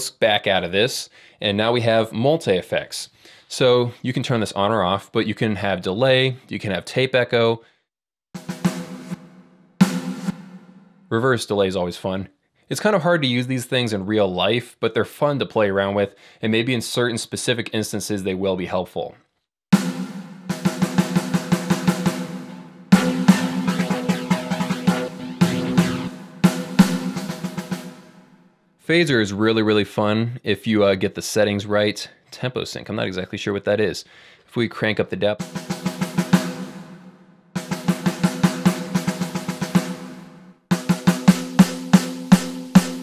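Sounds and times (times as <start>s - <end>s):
electronic snare drum hits: 8.4s - 10.9s, 19.7s - 28.3s, 35.4s - 43.0s
electronic drum hits with delay: 19.8s - 28.2s.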